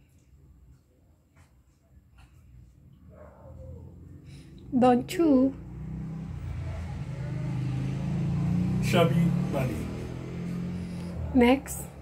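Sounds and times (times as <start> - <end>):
engine humming: 4.1 - 12.0.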